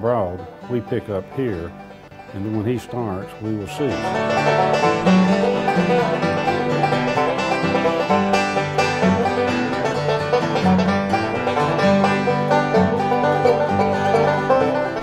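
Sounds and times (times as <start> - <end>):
banjo picking: 0.0 - 15.0
bass line: 0.0 - 15.0
bluegrass band playing: 0.0 - 15.0.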